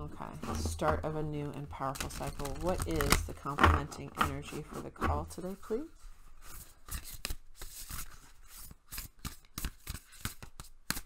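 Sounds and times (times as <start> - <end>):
cards being shuffled: 6.4 - 11.0.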